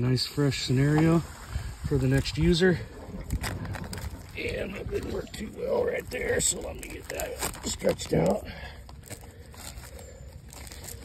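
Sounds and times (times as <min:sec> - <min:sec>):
hose crinkling: 0:00.0 - 0:11.0.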